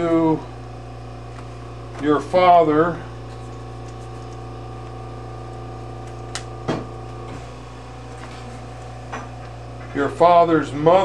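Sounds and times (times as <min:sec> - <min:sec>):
steady tonal hum: 0:00.0 - 0:11.0.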